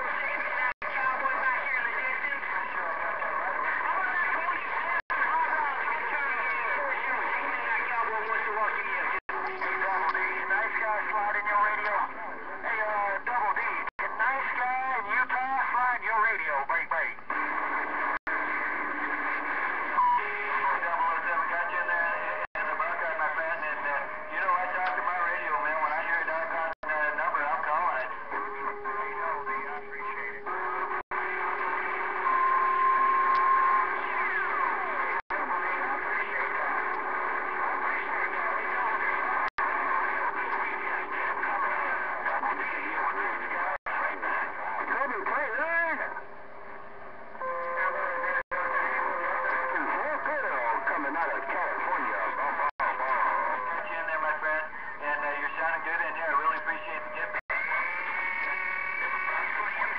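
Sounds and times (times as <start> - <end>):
garbled distant radio voices: 0.0 - 59.9
radio static: 0.0 - 59.9.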